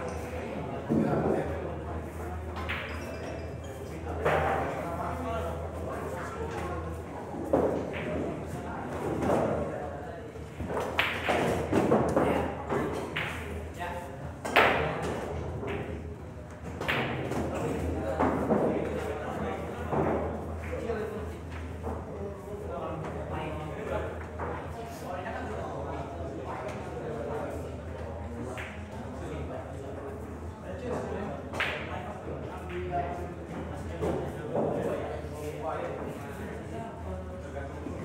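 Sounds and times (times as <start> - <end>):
low background talk: 0.0 - 38.0.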